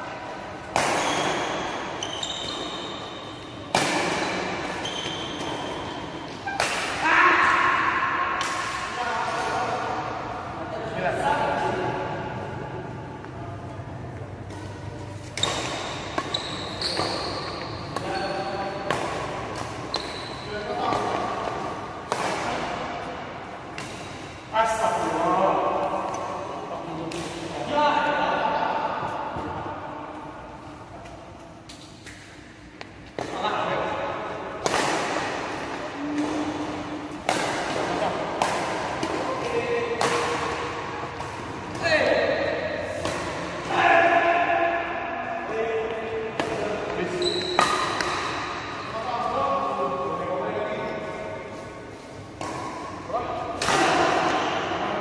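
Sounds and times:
rackets striking shuttlecock: 3.7s - 7.0s, 14.4s - 22.8s, 34.5s - 43.7s, 45.9s - 48.8s.

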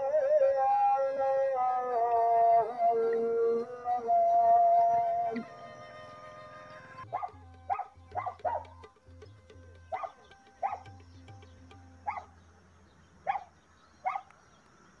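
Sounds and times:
dog barking: 7.1s - 8.7s, 9.9s - 10.9s, 12.0s - 12.3s, 13.3s - 14.3s.

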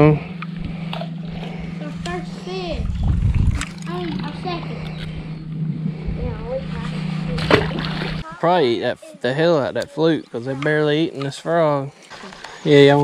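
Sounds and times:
steady low hum: 0.0s - 13.0s
fish splashing into water: 7.3s - 8.2s.

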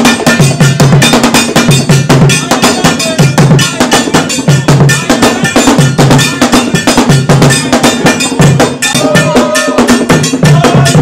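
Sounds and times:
fast drumming: 0.0s - 11.0s.

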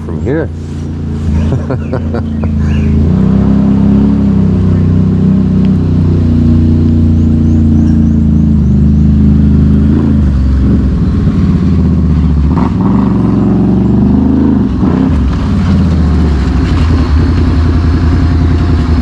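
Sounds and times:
atv engines idling: 0.0s - 3.3s, 4.5s - 12.5s, 14.7s - 19.0s.

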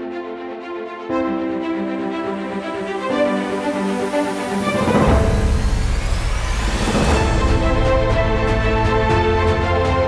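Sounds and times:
swelling whoosh: 2.3s - 9.2s
bass-heavy music: 2.6s - 10.0s.

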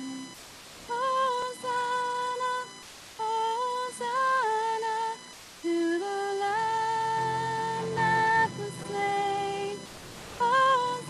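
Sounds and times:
woman humming a slow melody: 0.0s - 0.3s.

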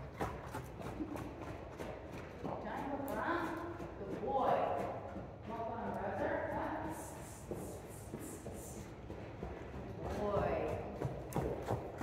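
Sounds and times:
horse hoofbeats on soft dirt: 0.0s - 12.0s.

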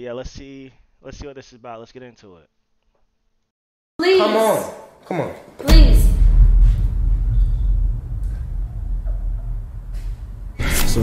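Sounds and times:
deep low rumble: 5.7s - 11.0s.

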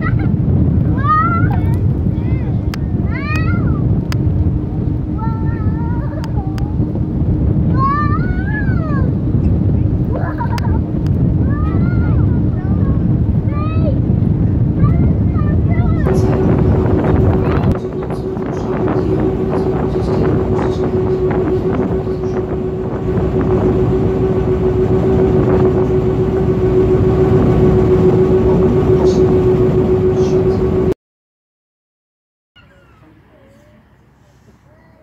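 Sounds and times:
boat engine drone: 0.0s - 31.0s
wind: 0.0s - 31.0s, 32.6s - 35.0s
gulls calling: 16.0s - 30.9s.

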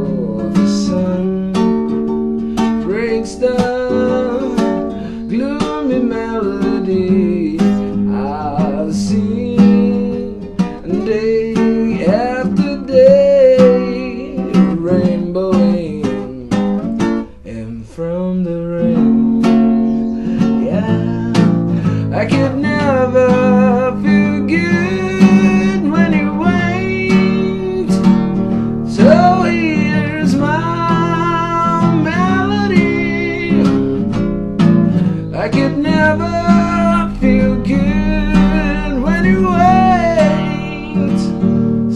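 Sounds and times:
man singing slow song: 0.0s - 1.9s, 2.6s - 34.2s, 35.0s - 41.9s
acoustic guitar strumming: 0.0s - 41.9s.

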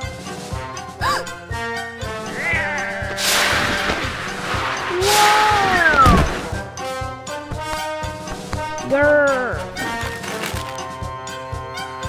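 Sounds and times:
background music: 0.0s - 12.0s
sliding tones falling in pitch: 2.2s - 6.5s
cartoon whoosh: 2.3s - 6.6s.

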